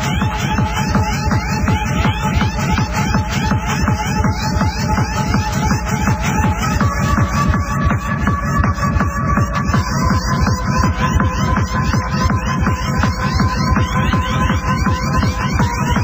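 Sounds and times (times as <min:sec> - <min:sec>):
pounding kick drum: 0:00.0 - 0:16.0
repeating synth riff: 0:00.0 - 0:16.0.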